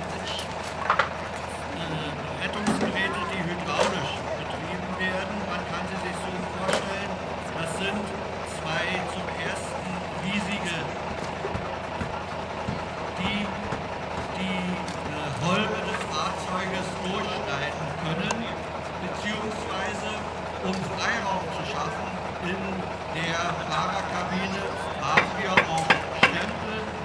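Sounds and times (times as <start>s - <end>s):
engine hum: 0.0s - 27.0s
voices of onlookers: 0.0s - 27.0s.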